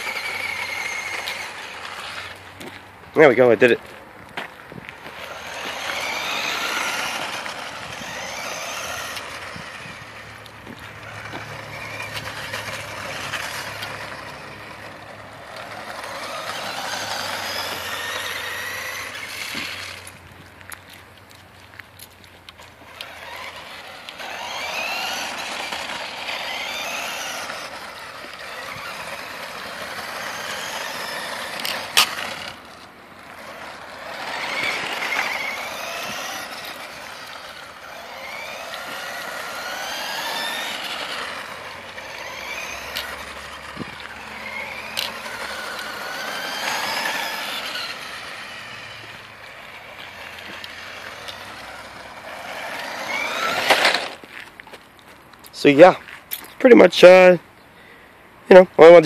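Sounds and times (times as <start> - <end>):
toy car electric motor whining: 0.0 - 3.8, 4.7 - 54.8.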